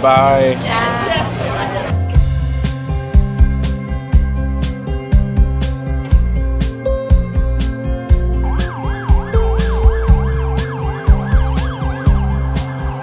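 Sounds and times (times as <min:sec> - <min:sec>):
background music with beat: 0:01.9 - 0:13.0
ambulance siren warbling: 0:07.9 - 0:13.0.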